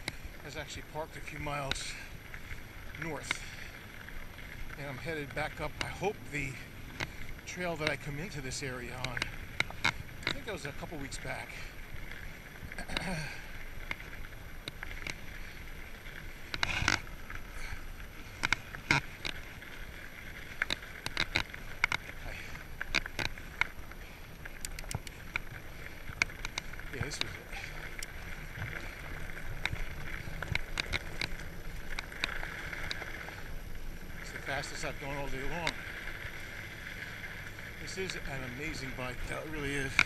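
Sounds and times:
bike rattling over bumps: 0:00.0 - 0:40.0
bike tyres hissing on gravel: 0:00.0 - 0:40.0.

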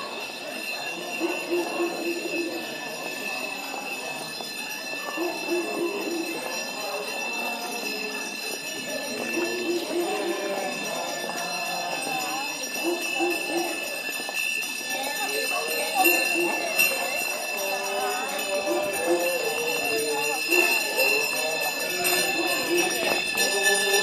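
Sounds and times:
small handbells jingling: 0:00.0 - 0:24.0
voices of walking crowd: 0:00.0 - 0:24.0.

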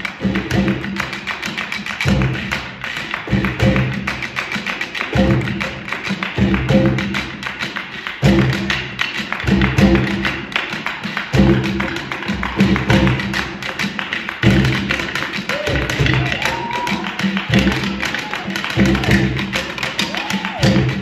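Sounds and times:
conga and hand drums: 0:00.0 - 0:21.0.

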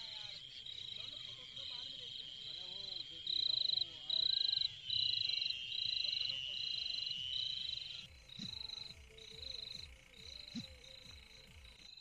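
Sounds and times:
buzzy high insect trills: 0:00.0 - 0:12.0.

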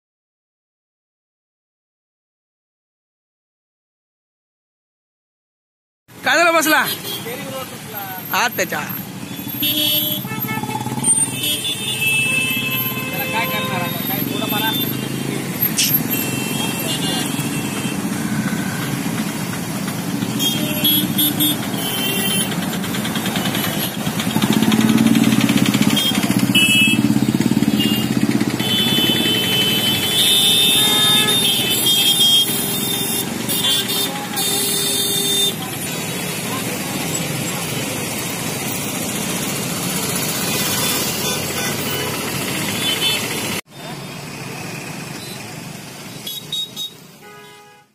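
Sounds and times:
motorcycle and car engines: 0:06.1 - 0:47.2
horns honking: 0:08.8 - 0:19.5, 0:20.1 - 0:37.8, 0:40.3 - 0:44.1, 0:46.1 - 0:47.9
people talking: 0:13.2 - 0:15.0, 0:35.4 - 0:38.3.

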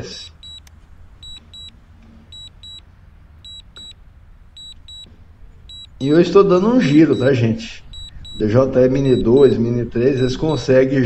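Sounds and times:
high double beeps: 0:00.2 - 0:02.8, 0:03.4 - 0:04.0, 0:04.6 - 0:05.1, 0:05.7 - 0:06.2, 0:06.8 - 0:10.8.

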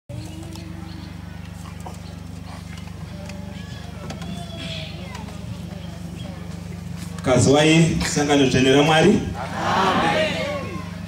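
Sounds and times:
low hum with fast flutter: 0:00.1 - 0:11.0.

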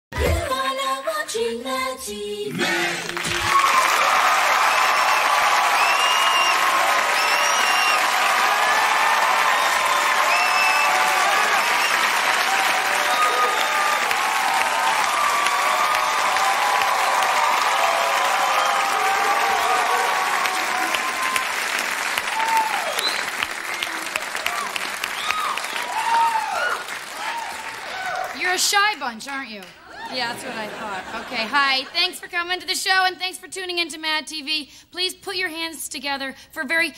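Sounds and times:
audience applauding and cheering: 0:03.0 - 0:28.9.

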